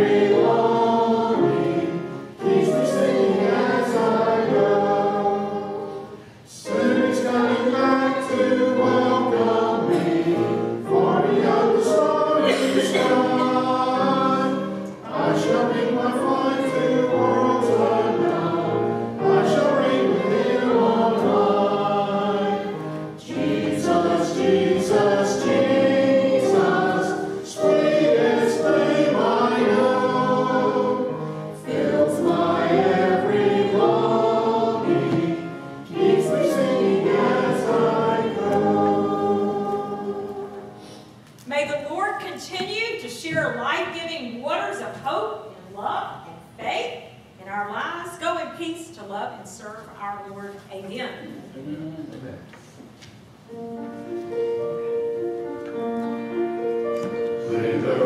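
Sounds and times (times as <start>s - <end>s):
congregation singing a hymn: 0.0s - 41.2s, 53.5s - 58.0s.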